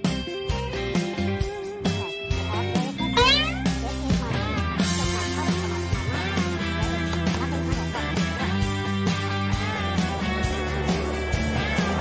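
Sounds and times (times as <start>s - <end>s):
plucked guitar music: 1.5s - 8.0s
rising animal call: 3.0s - 3.8s.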